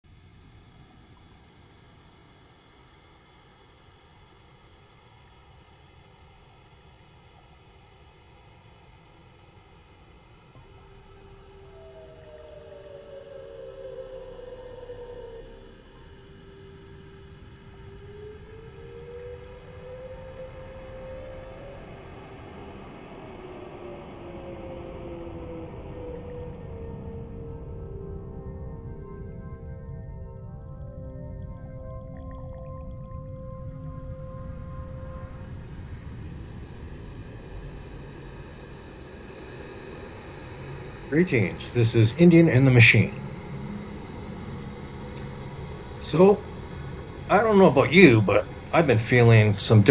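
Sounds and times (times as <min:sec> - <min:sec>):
low rumbling drone with hiss: 0:00.1 - 0:49.9.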